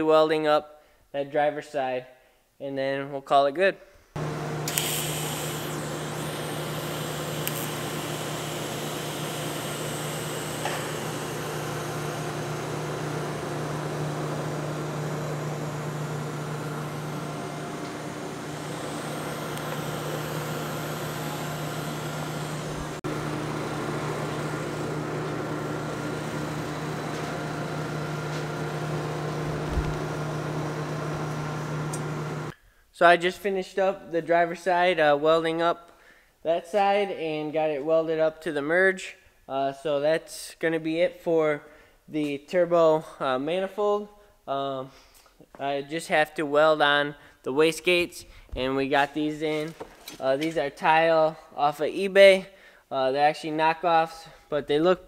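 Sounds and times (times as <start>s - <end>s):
machine hum: 4.2s - 32.5s.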